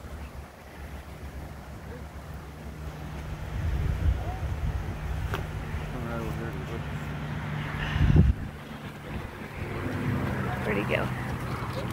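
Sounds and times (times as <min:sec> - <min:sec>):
low wind buffet: 0:00.0 - 0:11.9
wind rumbling on microphone: 0:02.8 - 0:11.9
faint voices: 0:05.7 - 0:11.9.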